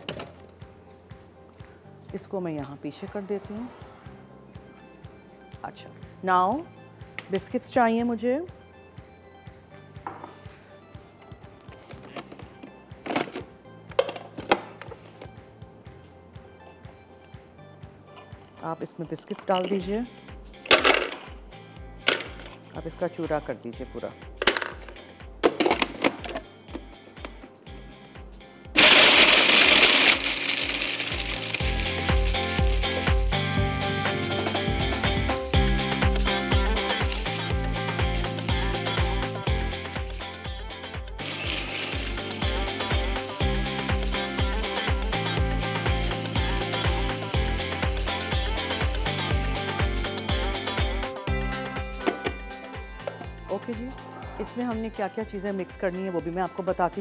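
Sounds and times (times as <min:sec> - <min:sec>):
food processor grinding biscuits: 0:28.8 - 0:33.0.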